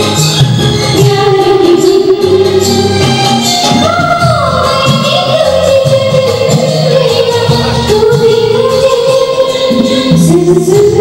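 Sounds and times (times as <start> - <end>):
backing track with steady beat: 0.0 - 11.0.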